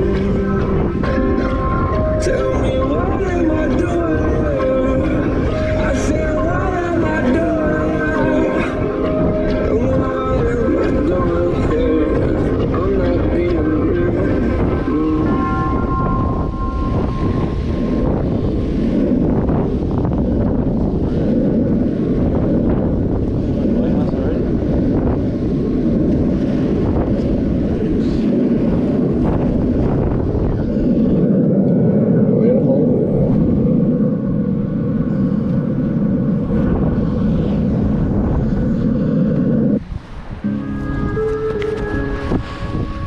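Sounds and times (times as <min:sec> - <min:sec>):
music: 0:00.0 - 0:19.2, 0:40.4 - 0:43.0
wind buffeting microphone: 0:00.0 - 0:43.0.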